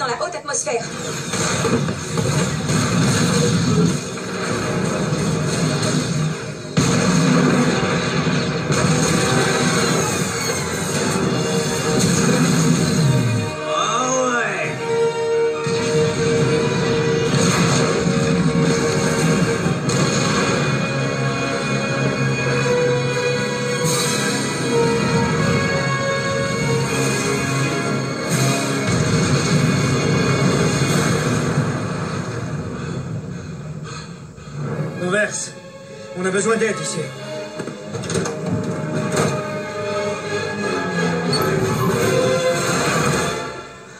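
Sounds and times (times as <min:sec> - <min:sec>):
rumble of explosions: 0:00.0 - 0:13.5, 0:15.6 - 0:35.4
dramatic film score: 0:00.0 - 0:43.9
loud hit: 0:01.2 - 0:13.4, 0:15.6 - 0:20.8, 0:26.8 - 0:32.8.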